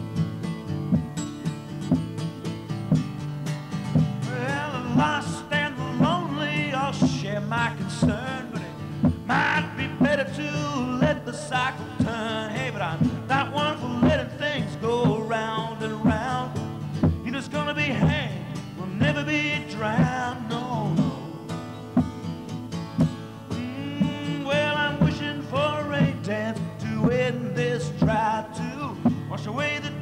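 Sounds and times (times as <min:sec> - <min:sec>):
acoustic guitar strummed: 0:00.0 - 0:30.0
man singing: 0:04.1 - 0:21.7, 0:23.5 - 0:30.0.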